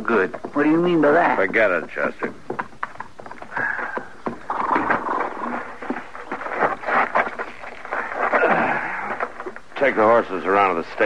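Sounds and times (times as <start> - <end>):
horse sounds: 0.0 - 11.0.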